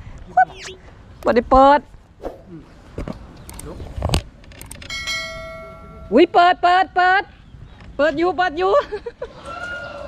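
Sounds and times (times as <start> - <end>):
sharp clicks: 3.4 - 5.0
bell ding: 4.9 - 6.4.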